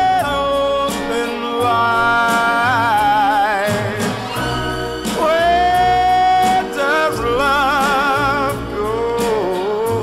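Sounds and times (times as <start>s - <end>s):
soul backing band: 0.0s - 10.0s.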